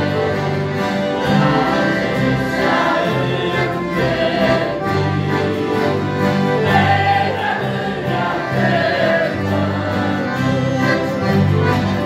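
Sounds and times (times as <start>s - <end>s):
accordions playing held chords: 0.0s - 12.0s
choir singing a hymn: 0.0s - 12.0s.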